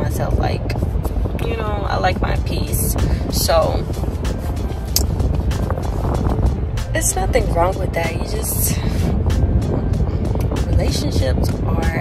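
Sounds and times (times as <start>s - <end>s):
car road and engine rumble: 0.0s - 12.0s
music playing: 0.0s - 12.0s.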